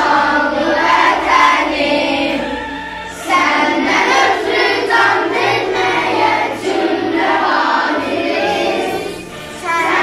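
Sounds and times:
children singing in unison: 0.0 - 10.0.

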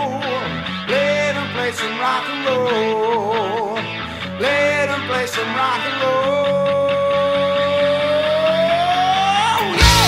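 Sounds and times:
rock band backing: 0.0 - 10.0.

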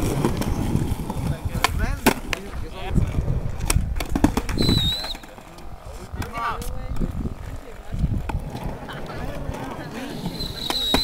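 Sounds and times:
skateboard clacking on ground: 0.0 - 11.0
skateboard wheels rolling on concrete: 0.0 - 11.0
high whistling tone: 4.6 - 5.3, 10.2 - 11.0.

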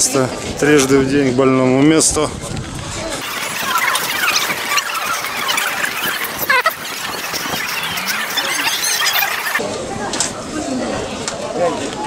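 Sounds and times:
birds squealing calls: 3.2 - 9.6.

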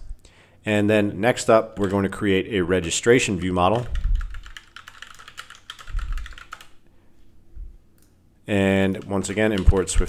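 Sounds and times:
fast typing on computer keyboard: 1.8 - 2.2, 3.3 - 6.7, 8.8 - 10.0.

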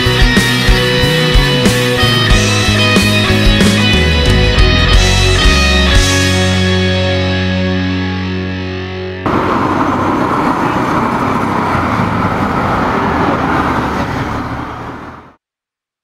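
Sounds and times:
road traffic rushing: 0.0 - 5.6, 9.2 - 15.4
rock band chord ringing out: 0.0 - 9.4.

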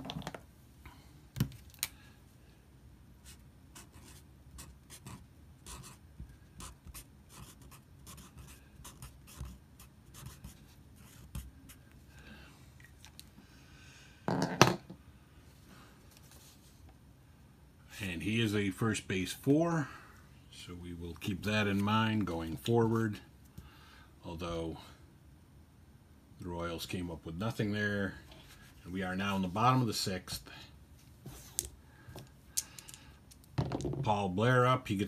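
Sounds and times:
pencil scratching on paper: 3.2 - 6.0, 6.6 - 11.8.

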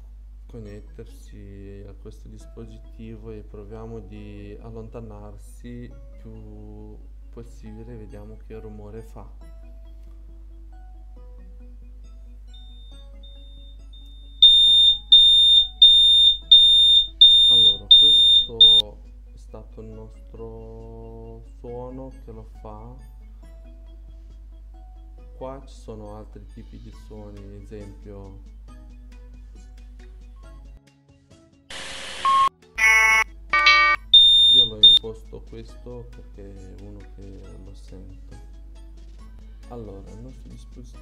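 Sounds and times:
high electronic alarm beeps: 12.6 - 18.8, 31.7 - 35.0.

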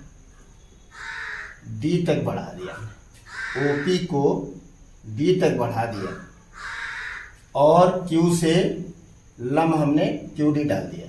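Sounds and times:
crow cawing: 0.9 - 1.7, 2.6 - 4.1, 5.9 - 7.5.

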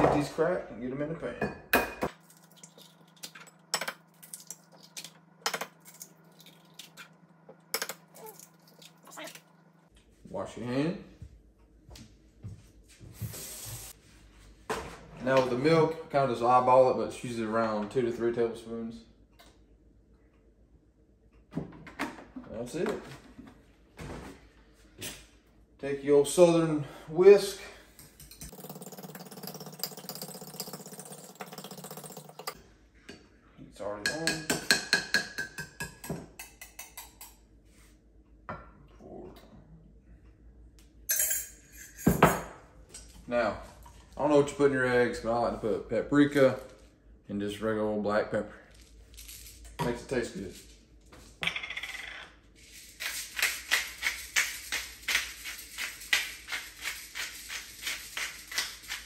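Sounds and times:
kitchen tap running: 2.2 - 7.2, 28.2 - 32.6.

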